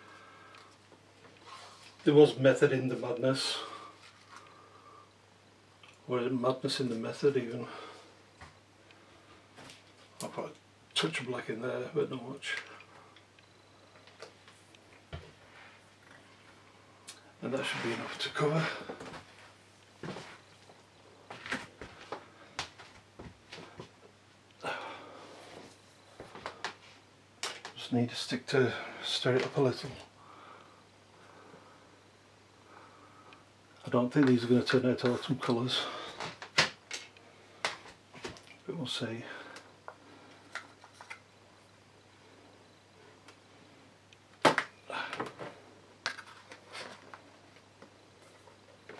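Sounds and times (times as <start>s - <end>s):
steady low hum: 0.0s - 48.9s.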